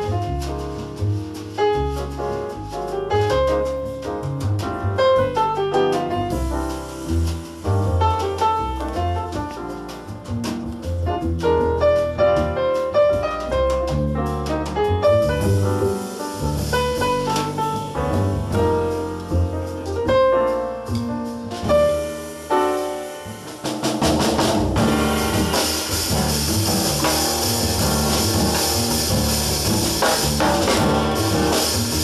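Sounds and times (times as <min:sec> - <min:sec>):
drum kit with cymbals: 0:00.0 - 0:32.0
grand piano melody: 0:00.0 - 0:32.0
walking double bass: 0:00.0 - 0:32.0.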